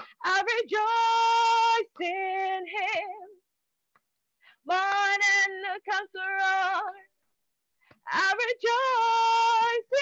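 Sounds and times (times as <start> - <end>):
woman singing unaccompanied: 0.0 - 3.5, 4.6 - 7.2, 7.9 - 10.0.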